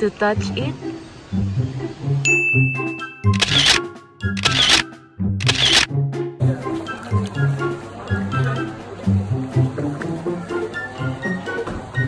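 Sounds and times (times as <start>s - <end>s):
background music low notes: 0.0s - 12.0s.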